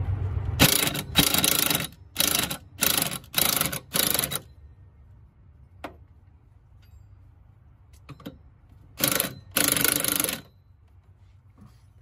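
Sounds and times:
impact wrench hammering: 0.6s - 4.5s.

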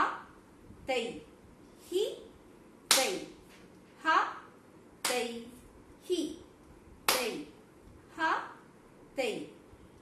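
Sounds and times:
hand clap: 2.9s - 3.2s, 7.1s - 7.4s.

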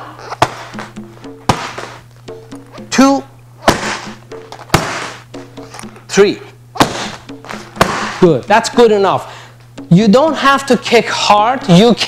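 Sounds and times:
background music with short notes: 0.0s - 12.0s
kicks slapping pads: 0.3s - 2.0s, 3.6s - 5.3s, 6.7s - 8.3s.

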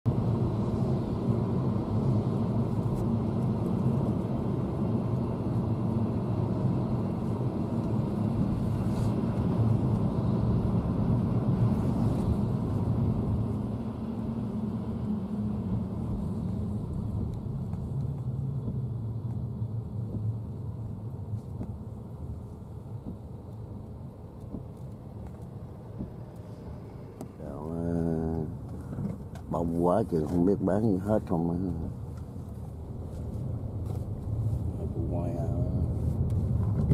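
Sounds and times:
car engine and tyre rumble: 0.0s - 36.9s.

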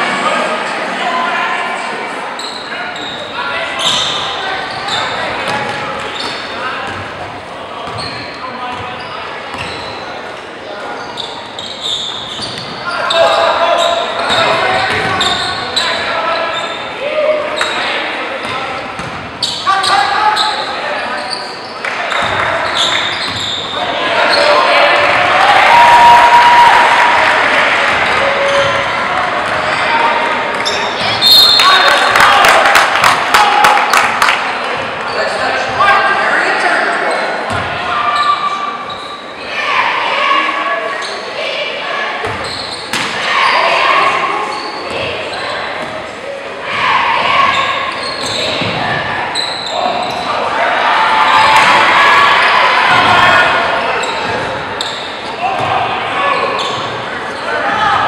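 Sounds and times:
crowd voices and shouts: 0.0s - 58.0s.

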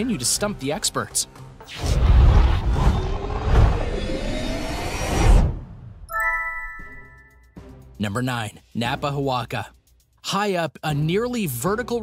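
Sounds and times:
loud whoosh: 1.8s - 6.0s.

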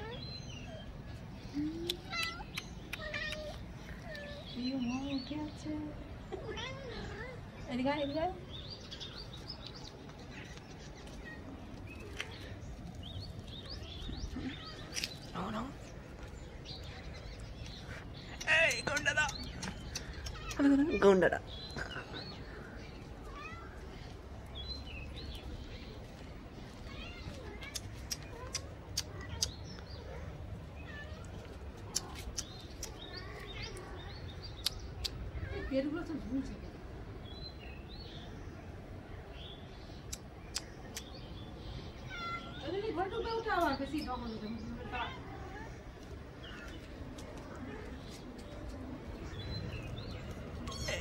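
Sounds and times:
kitten mewing: 50.6s - 51.0s.

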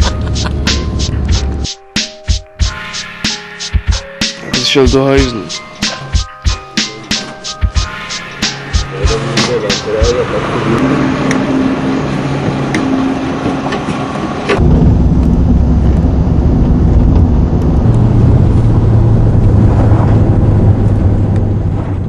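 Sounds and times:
road rumble: 0.0s - 1.7s, 4.7s - 22.0s
vehicle engine drone: 0.0s - 1.7s, 7.8s - 22.0s.

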